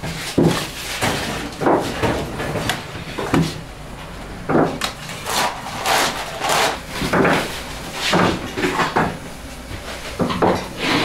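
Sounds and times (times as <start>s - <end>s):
metal poker scraping clay oven: 4.8s - 8.9s.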